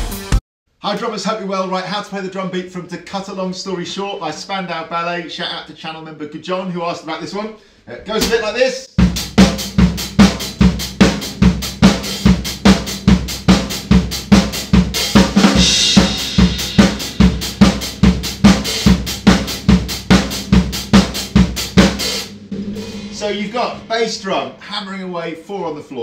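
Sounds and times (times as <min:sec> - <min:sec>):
snare drum: 0:08.2 - 0:24.4
bass drum: 0:08.2 - 0:24.6
cymbal ringing: 0:15.6 - 0:17.7, 0:22.2 - 0:24.7.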